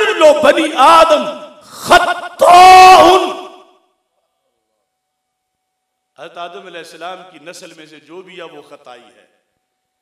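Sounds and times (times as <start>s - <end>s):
man speaking with hall echo: 0.0s - 4.8s, 6.1s - 9.6s.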